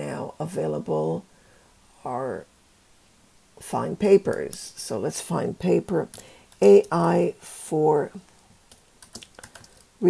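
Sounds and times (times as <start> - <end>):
keyboard typing clicks: 9.0 - 9.8.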